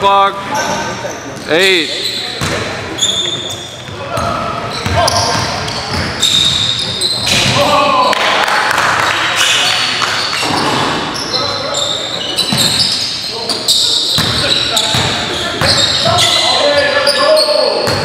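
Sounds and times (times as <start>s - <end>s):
players calling out: 0.0s - 18.0s
sneaker squeaks: 0.5s - 7.7s, 9.4s - 18.0s.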